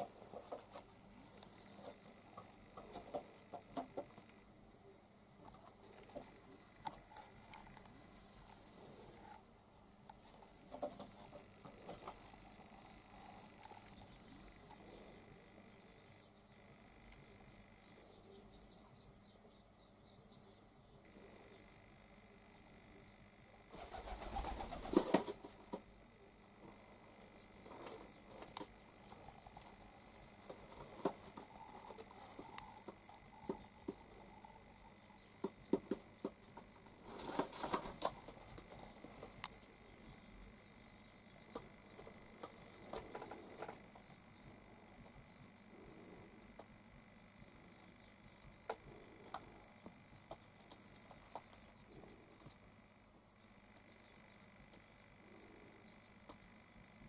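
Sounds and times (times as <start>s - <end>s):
pigeons cooing: 23.7s - 25.4s, 41.5s - 44.3s.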